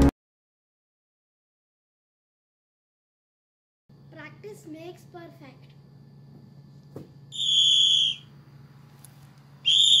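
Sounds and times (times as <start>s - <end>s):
whistle blasts: 7.3s - 8.3s, 9.6s - 10.0s.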